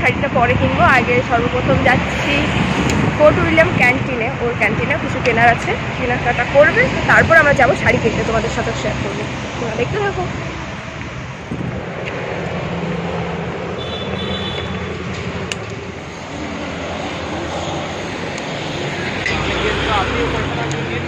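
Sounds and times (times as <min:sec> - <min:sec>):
bus passing: 0:00.0 - 0:21.0
vehicle engines on city road: 0:00.0 - 0:21.0.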